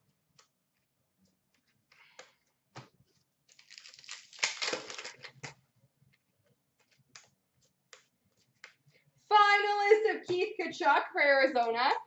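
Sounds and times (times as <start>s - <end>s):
cards being flipped: 1.5s - 5.6s.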